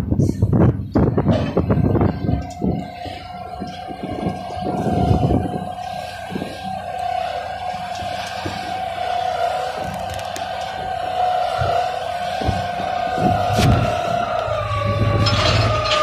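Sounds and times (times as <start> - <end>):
piling machinery whine: 0.8 - 16.0.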